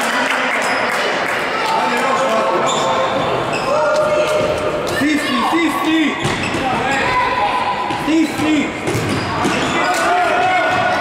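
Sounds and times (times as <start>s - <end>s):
players calling out: 1.6s - 11.0s.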